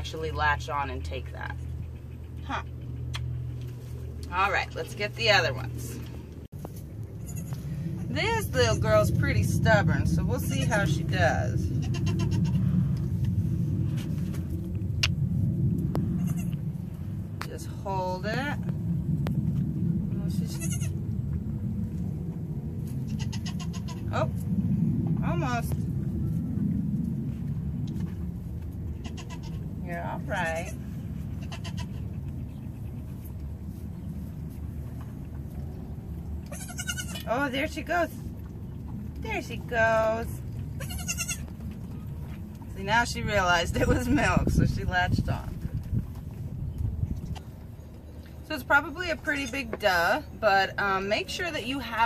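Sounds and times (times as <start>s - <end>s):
goat kid bleating: 7.2s - 7.6s, 11.8s - 12.7s, 16.2s - 16.6s, 20.5s - 21.0s, 23.1s - 24.1s, 29.0s - 29.6s, 31.4s - 32.1s, 36.4s - 37.3s, 40.8s - 41.5s.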